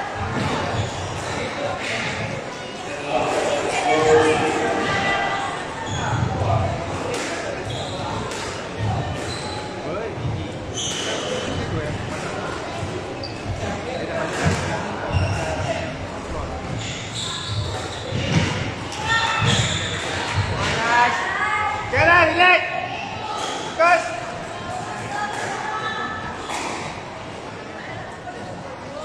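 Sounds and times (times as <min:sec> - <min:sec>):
shoe squeaks on wooden floor: 0:09.1 - 0:09.8, 0:10.7 - 0:11.7, 0:15.1 - 0:15.8, 0:16.8 - 0:18.3.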